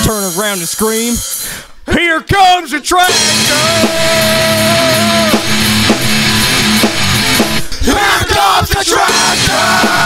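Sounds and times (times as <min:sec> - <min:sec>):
drum kit playing: 0:00.0 - 0:01.7, 0:02.8 - 0:10.0
electric guitar: 0:03.1 - 0:07.8.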